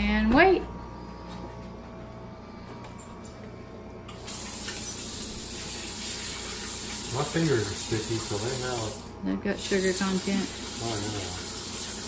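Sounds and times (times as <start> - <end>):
low steady hum: 0.0 - 10.8
faucet running into sink: 4.2 - 12.0.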